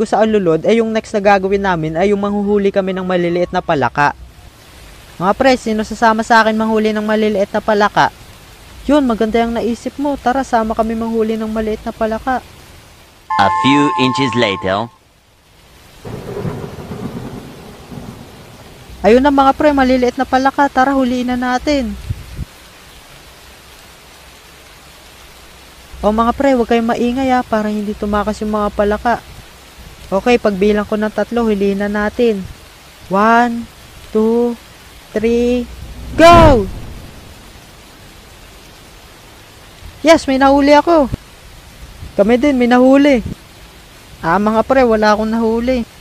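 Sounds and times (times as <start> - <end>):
rain: 0.0 - 46.0
thunder rumbling: 16.0 - 20.0, 35.1 - 38.8.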